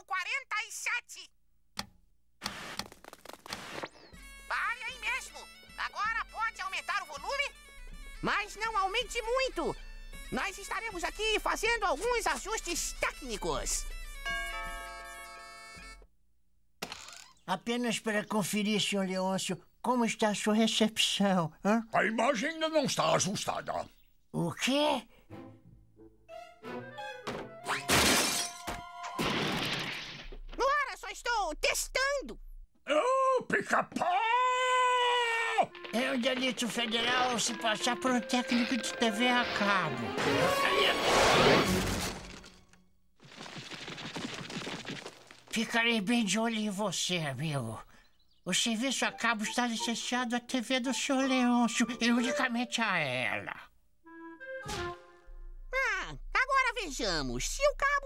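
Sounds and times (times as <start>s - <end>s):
cartoon music: 4.1s - 16.1s, 35.6s - 41.1s, 48.9s - 53.0s
crash and shatter effect: 29.2s - 30.4s, 39.4s - 42.6s.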